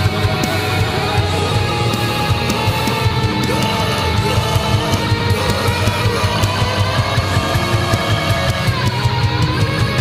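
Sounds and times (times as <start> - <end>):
drum and cymbal hits: 0.0 - 10.0
heavy rock music: 0.0 - 10.0.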